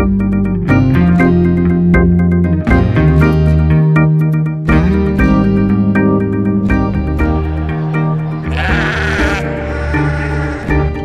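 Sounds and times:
background music with held notes: 0:00.0 - 0:11.0
sheep bleating: 0:08.4 - 0:11.0.

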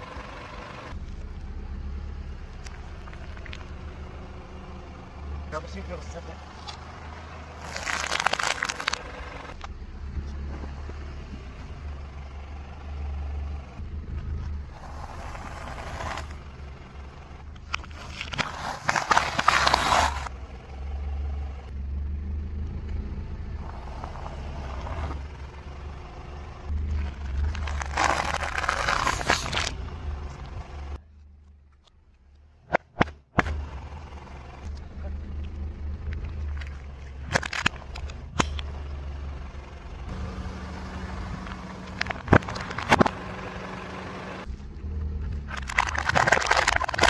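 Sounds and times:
car engine humming: 0:00.0 - 0:47.0
loud crunch: 0:07.5 - 0:09.7, 0:14.4 - 0:20.3, 0:26.7 - 0:33.7, 0:36.1 - 0:38.9, 0:41.1 - 0:43.6, 0:45.2 - 0:47.0
tyre crushing snacks: 0:07.6 - 0:09.5, 0:17.7 - 0:20.3, 0:26.9 - 0:29.8, 0:36.6 - 0:38.6, 0:41.4 - 0:43.2, 0:45.4 - 0:47.0
faint crackles: 0:07.6 - 0:09.6.

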